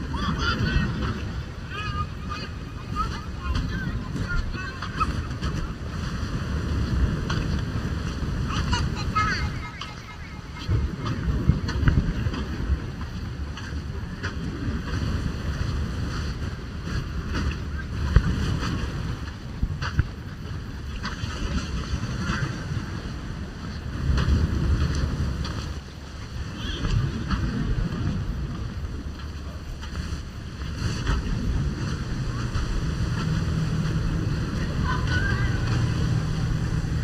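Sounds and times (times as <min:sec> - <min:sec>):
small waves on sandy beach: 0:00.0 - 0:37.0
wind buffeting microphone: 0:00.0 - 0:37.0.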